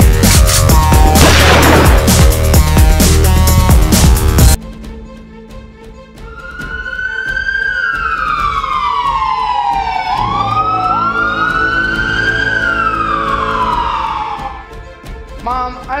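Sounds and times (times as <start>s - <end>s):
siren wailing: 6.2s - 14.8s.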